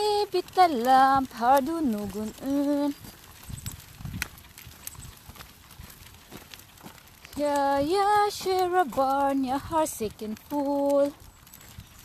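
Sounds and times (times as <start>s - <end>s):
footsteps on dirt path: 0.0s - 12.0s
pushchair wheels rolling: 0.0s - 12.0s.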